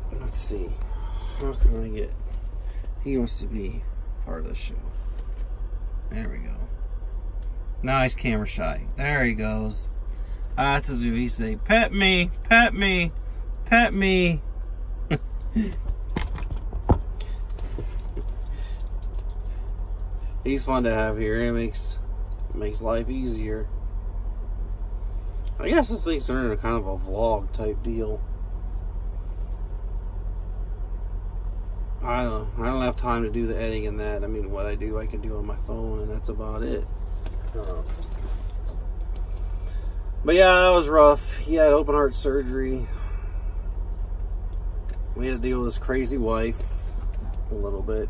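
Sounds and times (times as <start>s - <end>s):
diesel engine idling: 0.0s - 48.0s
low hum inside truck cab: 0.0s - 48.0s.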